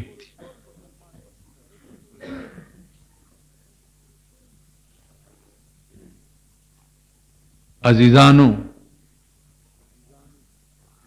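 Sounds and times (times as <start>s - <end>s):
man clearing throat: 0.0s - 0.8s, 1.9s - 2.9s
faint background hum: 0.0s - 11.0s.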